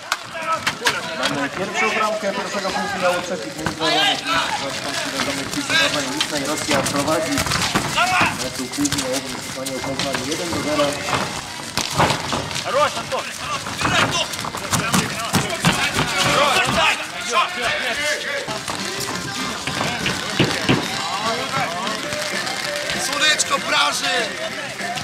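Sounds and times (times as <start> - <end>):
voices shouting and calling out: 0.0 - 25.0.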